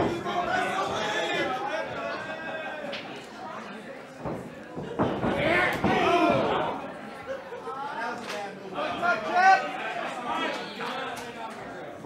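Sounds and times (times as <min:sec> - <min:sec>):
spectators shouting: 0:05.3 - 0:06.8.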